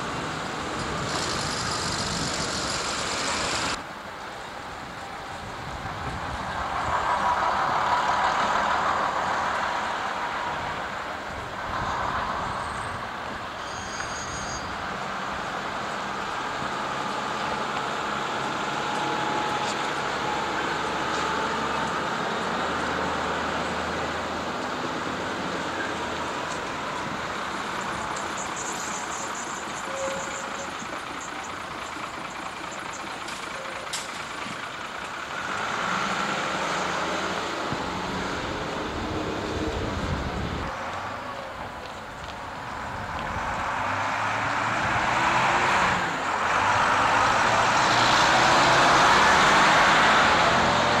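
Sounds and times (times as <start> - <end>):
diesel bus engines: 0.0 - 51.0
traffic background: 0.0 - 51.0.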